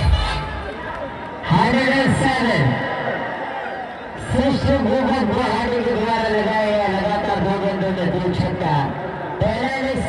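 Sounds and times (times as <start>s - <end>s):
man commentating: 0.0s - 3.3s, 4.0s - 10.0s.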